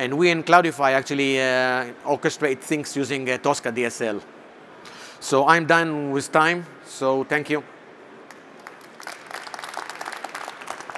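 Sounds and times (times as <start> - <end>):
audience applauding: 8.3 - 10.9.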